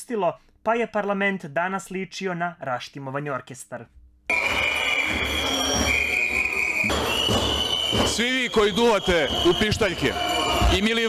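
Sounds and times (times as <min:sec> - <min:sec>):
noisy crowd: 0:04.3 - 0:11.0
shrill whistle blasts: 0:04.3 - 0:11.0.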